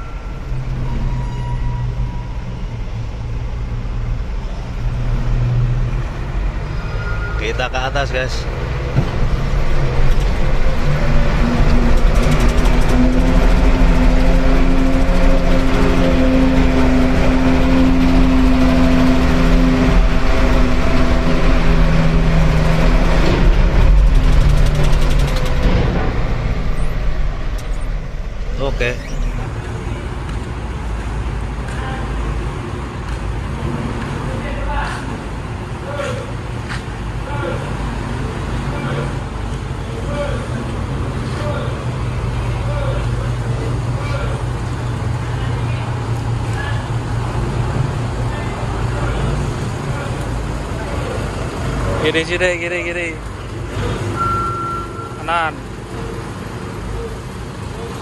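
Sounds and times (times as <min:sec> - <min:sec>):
diesel truck engine under load: 0:08.1 - 0:31.6
scattered knocks: 0:11.0 - 0:17.4.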